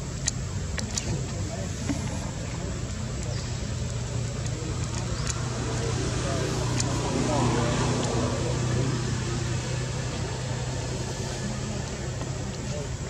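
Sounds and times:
low motor hum: 0:00.0 - 0:13.0
faint clicks: 0:00.1 - 0:08.2.

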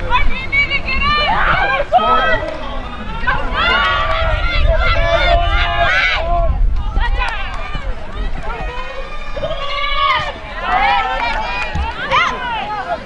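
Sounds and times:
women shouting and calling out: 0:00.0 - 0:02.4, 0:03.0 - 0:08.7.

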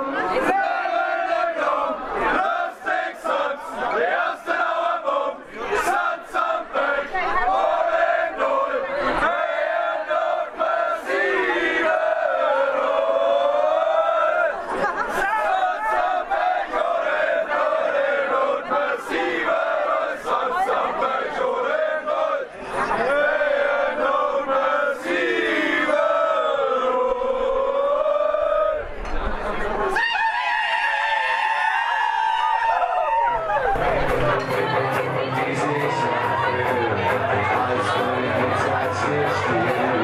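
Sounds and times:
crowd singing and shouting: 0:00.0 - 0:40.0.

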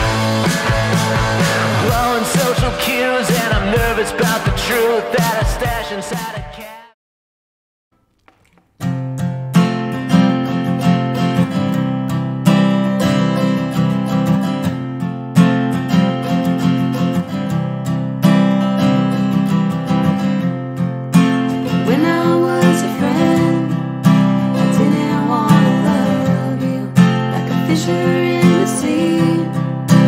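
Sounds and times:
acoustic guitar strumming: 0:00.0 - 0:06.8, 0:08.3 - 0:30.0
wordless singing voice: 0:01.4 - 0:07.0, 0:21.5 - 0:23.9, 0:24.5 - 0:30.0.

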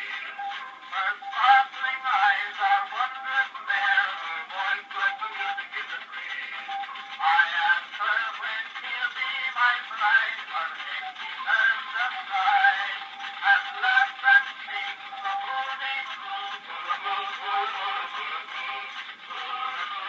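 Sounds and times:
thin phonograph singing: 0:00.0 - 0:20.0.

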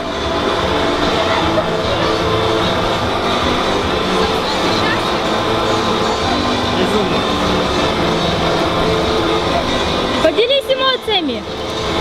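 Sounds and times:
distant voices: 0:00.0 - 0:12.0
outdoor noise: 0:00.0 - 0:12.0.

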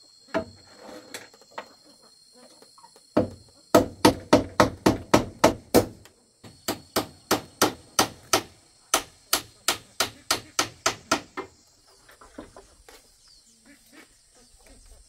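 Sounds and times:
hammer striking metal roofing sheet: 0:06.7 - 0:11.5.

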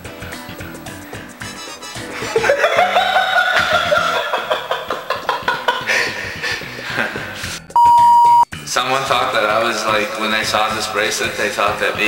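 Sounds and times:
laughter in bursts: 0:02.0 - 0:07.5
censor bleep: 0:07.8 - 0:08.5.

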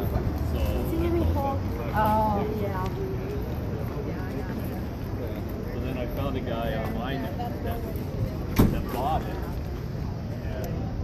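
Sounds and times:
background chatter of voices: 0:00.0 - 0:11.0.

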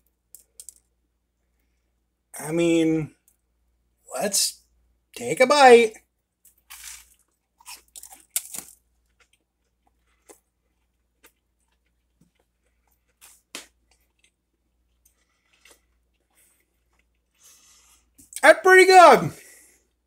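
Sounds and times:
faint chewing: 0:06.4 - 0:18.4
crisp crunches of biting: 0:06.5 - 0:14.4.

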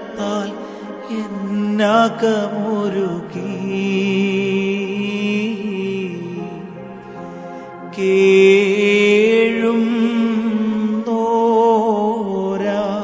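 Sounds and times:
devotional song on keyboard: 0:00.0 - 0:13.0.

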